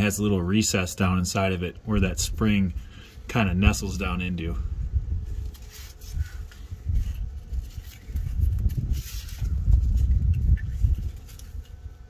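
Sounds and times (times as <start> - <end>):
wind buffeting microphone: 3.6 - 12.0.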